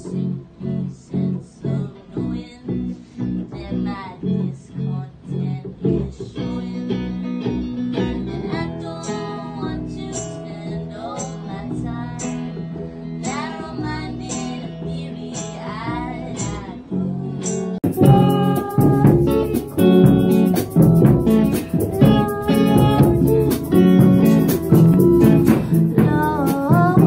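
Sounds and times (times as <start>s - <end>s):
woman singing: 0.0s - 7.6s, 8.4s - 27.0s
electric guitar: 0.0s - 27.0s
upright double bass: 15.9s - 27.0s.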